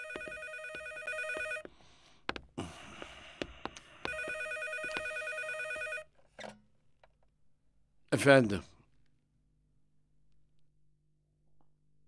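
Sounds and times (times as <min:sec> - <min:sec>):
telephone ringing: 0:00.0 - 0:01.7, 0:04.1 - 0:06.2.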